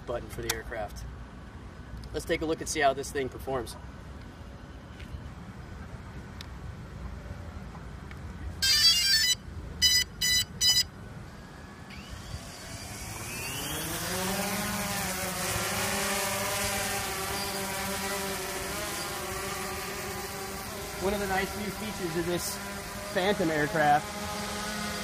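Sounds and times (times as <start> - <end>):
quick beeps: 8.6 - 10.9
drone propeller buzz: 8.6 - 25.0.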